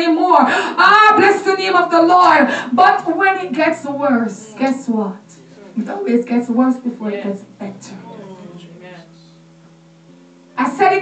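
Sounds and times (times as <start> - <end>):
low hum of sustained tones: 0.0 - 11.0
faint voice: 7.2 - 9.3.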